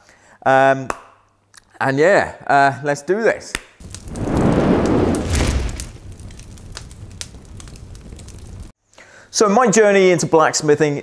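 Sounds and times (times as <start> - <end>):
fire rumbling and crackling: 3.8 - 8.7
flame whooshing up: 3.8 - 8.7.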